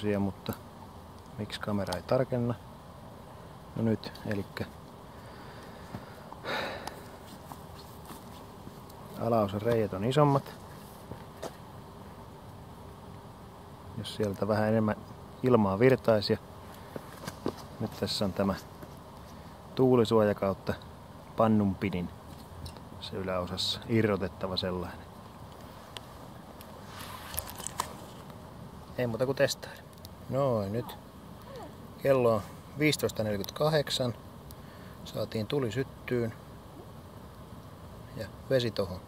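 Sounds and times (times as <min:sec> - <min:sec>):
faint outdoor background noise: 0:00.0 - 0:39.0.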